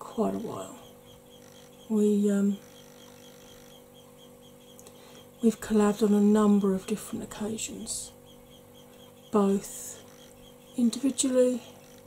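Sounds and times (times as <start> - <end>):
faint electrical hum: 0.0 - 12.0
faint ticks: 2.6 - 5.3.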